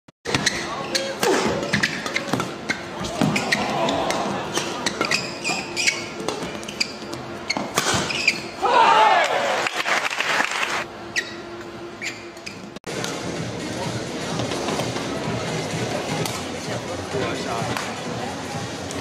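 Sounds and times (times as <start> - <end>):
short high squeaks: 4.5 - 8.6, 11.0 - 12.7
people shouting: 8.6 - 9.7.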